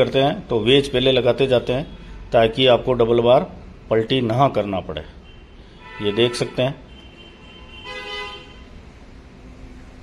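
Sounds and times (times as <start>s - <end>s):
vehicle horn toot: 5.2s - 8.8s.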